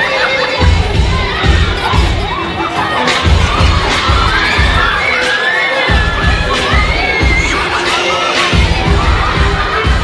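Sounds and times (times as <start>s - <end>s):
children shouting and cheering: 0.0s - 10.0s
music with low beat: 5.9s - 10.0s.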